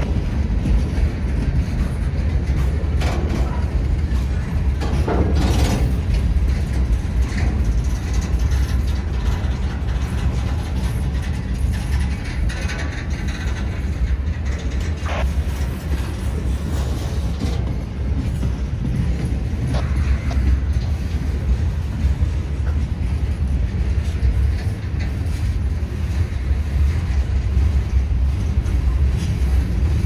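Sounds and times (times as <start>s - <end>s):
train wheels rumbling on rails: 0.0s - 30.0s.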